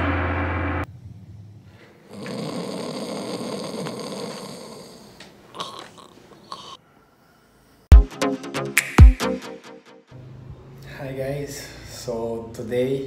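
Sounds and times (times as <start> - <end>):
person snoring: 2.0 - 6.8.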